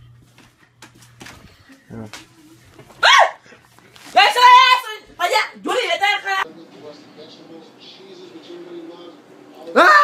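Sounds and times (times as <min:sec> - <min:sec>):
high-pitched yelp: 0:03.0 - 0:03.4.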